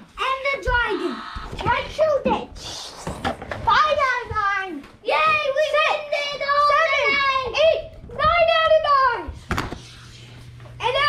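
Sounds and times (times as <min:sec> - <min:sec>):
child making wordless calls: 0:00.2 - 0:02.8.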